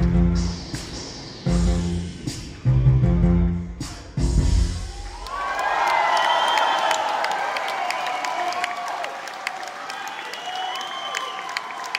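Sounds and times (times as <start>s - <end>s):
audience cheering and whistling: 4.6s - 11.9s
audience applauding: 5.0s - 11.9s.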